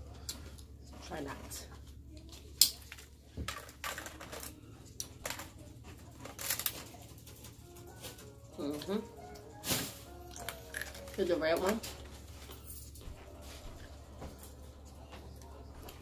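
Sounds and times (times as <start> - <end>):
hard candy snapping: 10.3 - 11.2.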